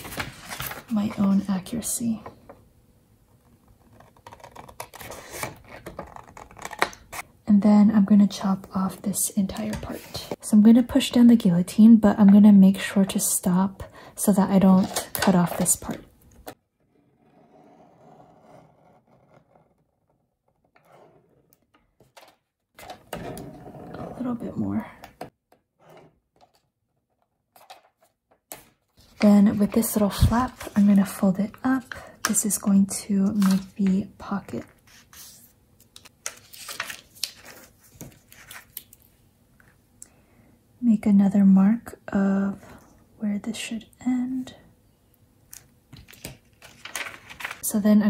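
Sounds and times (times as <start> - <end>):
paper rustling and crinkling: 0.0 - 1.4, 34.7 - 39.1, 46.0 - 47.6.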